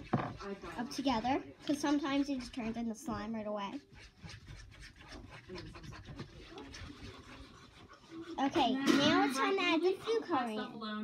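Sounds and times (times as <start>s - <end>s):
fork scraping glue on plate: 0.0s - 10.4s.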